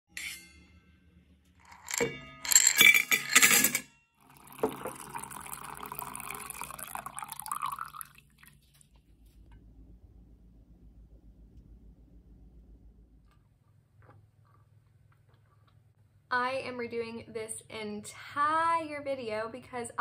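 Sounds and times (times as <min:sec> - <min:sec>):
metal tumbler clinking: 0:01.6 - 0:05.0
coffee pouring into tumbler: 0:04.2 - 0:09.0.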